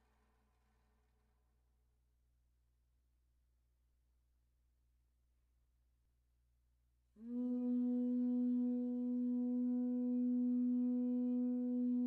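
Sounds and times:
alto saxophone long held note: 0:07.2 - 0:12.0.

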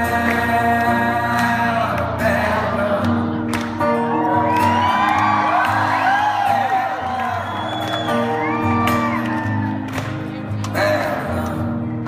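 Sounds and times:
acoustic guitar strumming: 0:00.0 - 0:12.0
audience whooping and cheering: 0:03.8 - 0:10.1.

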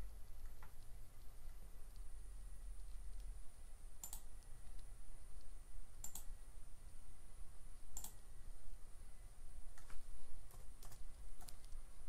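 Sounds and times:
low room hum: 0:00.0 - 0:12.0
faint double clicks: 0:04.0 - 0:06.3, 0:07.9 - 0:08.2.

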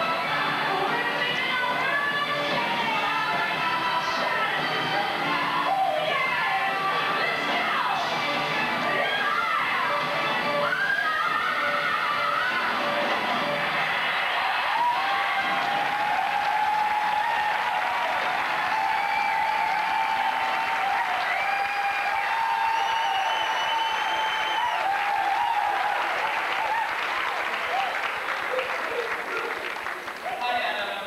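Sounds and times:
audience applauding and cheering: 0:00.0 - 0:31.0.

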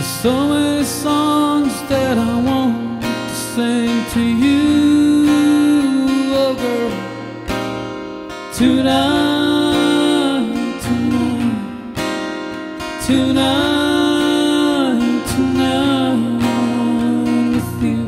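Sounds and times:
man singing: 0:00.0 - 0:07.3, 0:08.5 - 0:12.2, 0:12.8 - 0:18.0
acoustic guitar strumming: 0:00.0 - 0:18.0.

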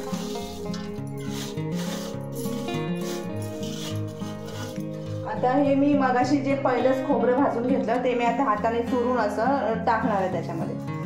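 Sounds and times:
dry mixture scraping in bowl: 0:00.0 - 0:05.3
instrumental background music: 0:00.0 - 0:11.0.

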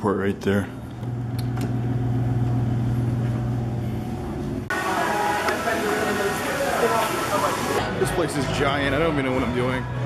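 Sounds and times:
elevator hum: 0:00.9 - 0:07.9
lobby chatter: 0:04.7 - 0:10.0.

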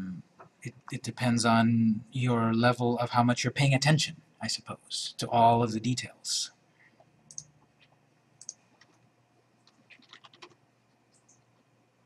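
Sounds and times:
faint computer keyboard typing: 0:07.0 - 0:09.0, 0:09.6 - 0:11.7.

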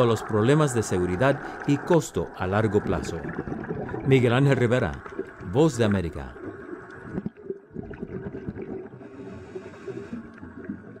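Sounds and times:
underwater bubbling: 0:00.0 - 0:11.0.

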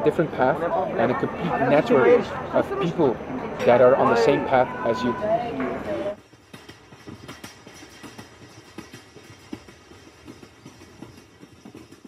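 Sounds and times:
distant voices murmuring: 0:00.0 - 0:06.2
light knocks and clinks: 0:06.2 - 0:12.0.

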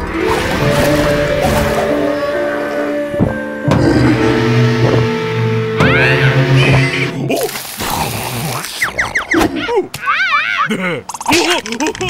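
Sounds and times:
cartoon music with held notes: 0:00.0 - 0:07.4
sudden orchestral hit: 0:00.1 - 0:07.4
deep bass note: 0:03.0 - 0:07.4.

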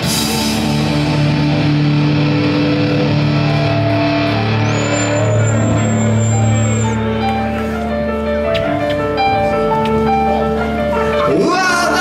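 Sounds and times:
bass: 0:00.0 - 0:12.0
electric guitars sustained notes: 0:00.0 - 0:12.0
keyboards: 0:00.0 - 0:12.0.

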